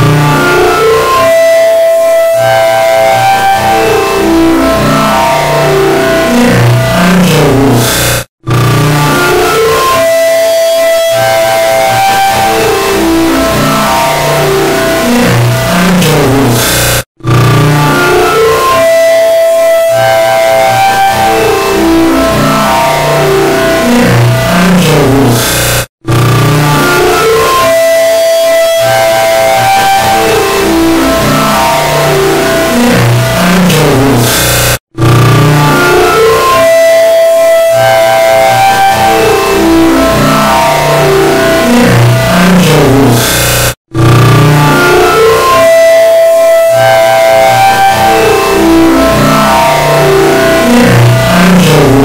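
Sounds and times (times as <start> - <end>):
distorted layered voice mass: 3.7 - 10.0, 12.1 - 18.8, 20.8 - 27.6, 29.4 - 36.6, 38.6 - 45.6, 47.6 - 52.0
layered guitar music: 44.6 - 52.0.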